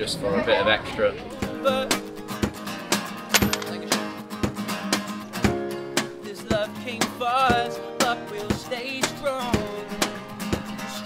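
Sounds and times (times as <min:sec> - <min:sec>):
acoustic guitar strumming: 0:01.3 - 0:11.0.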